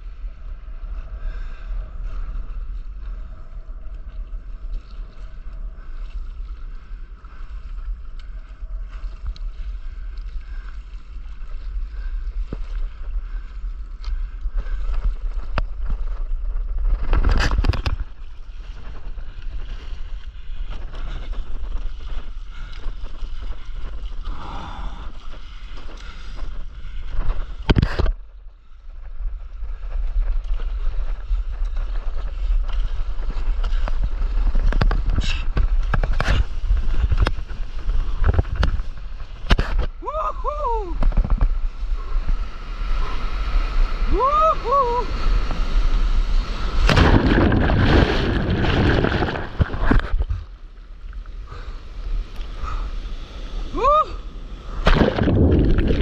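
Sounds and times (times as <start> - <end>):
wind buffeting microphone: 11.5 - 50.8, 52.0 - 56.0
person whooping: 40.0 - 41.0, 44.1 - 45.2, 53.7 - 54.2
water slapping against paddleboard: 46.3 - 50.6, 54.7 - 56.0
sharp splashes: 46.7 - 50.0, 54.7 - 56.0.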